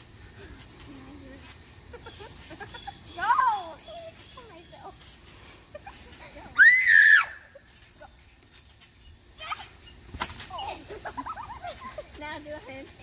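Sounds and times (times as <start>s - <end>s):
girl's high-pitched scream: 6.6s - 7.6s.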